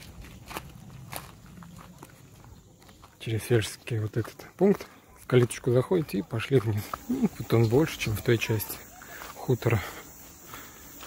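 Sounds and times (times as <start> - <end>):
low outdoor background: 0.0 - 11.0.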